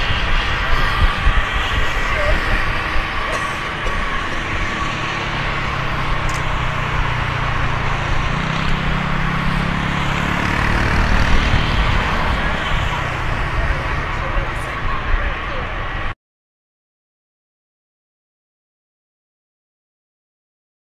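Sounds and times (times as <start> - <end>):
jet engine high whine: 0.0 - 16.2
jet engines rushing: 0.0 - 16.2.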